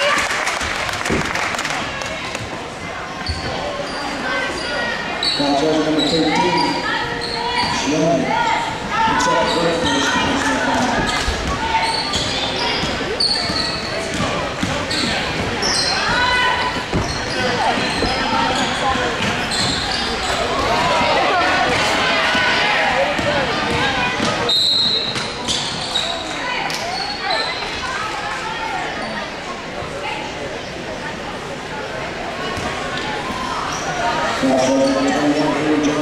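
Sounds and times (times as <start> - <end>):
spectators talking and calling out: 0.0 - 36.0
sneakers squeaking on court: 3.1 - 7.9, 9.2 - 21.8, 23.0 - 27.8, 32.5 - 36.0
basketball dribbling: 11.4 - 19.9.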